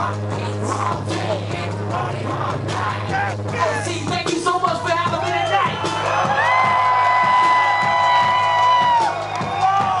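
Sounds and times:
live hip-hop music: 0.0s - 10.0s.

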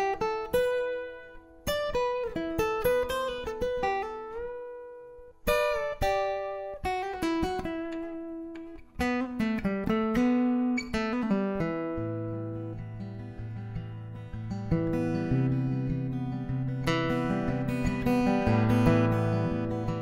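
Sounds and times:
acoustic guitar playing: 0.0s - 20.0s.

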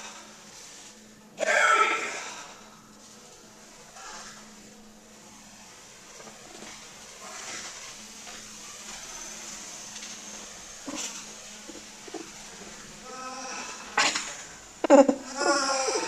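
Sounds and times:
steady low hum: 0.0s - 16.0s
cardboard box scraping on floor: 6.3s - 8.4s.

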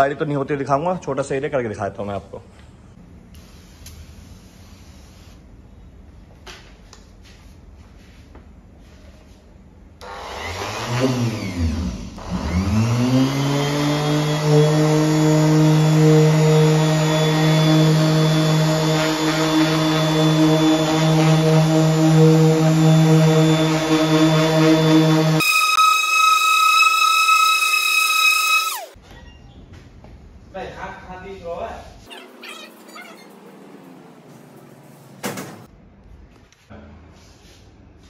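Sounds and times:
orbital sander motor whine: 10.0s - 29.0s.

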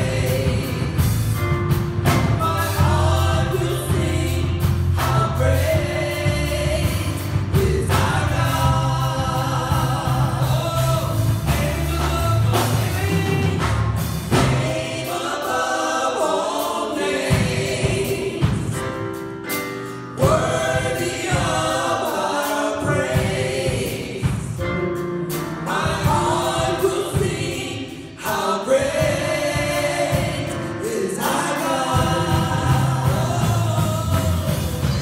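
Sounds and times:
band accompaniment with beat: 0.0s - 35.0s
vocal group singing in harmony: 0.0s - 35.0s.

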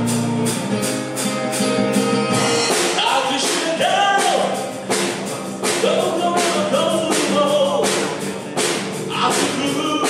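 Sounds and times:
acoustic guitar: 0.0s - 10.0s
cajon beat: 0.0s - 10.0s
electric bass: 0.0s - 10.0s
person singing: 2.7s - 10.0s.

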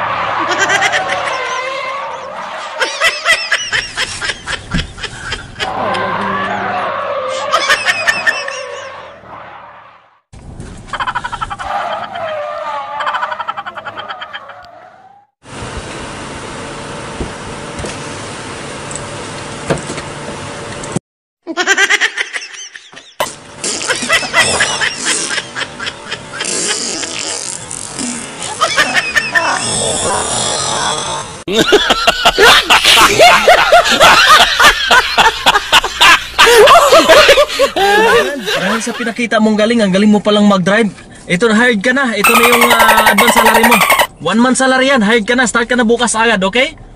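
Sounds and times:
voices shouting: 0.0s - 3.1s, 5.6s - 10.0s, 42.2s - 44.1s
laughter: 0.4s - 1.6s, 2.7s - 5.8s, 7.4s - 8.9s, 10.9s - 11.7s, 13.0s - 14.6s, 21.5s - 27.2s, 28.4s - 29.8s, 31.5s - 39.2s.

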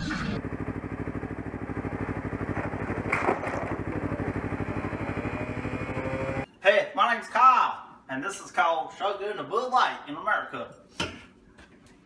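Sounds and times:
vehicle engine idling: 0.0s - 3.2s.

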